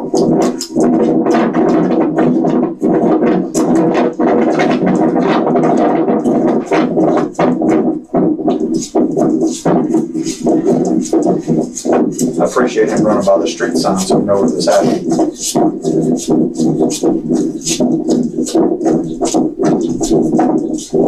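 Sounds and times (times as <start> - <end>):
music with a beat: 0.0 - 21.0
voices: 12.4 - 15.0.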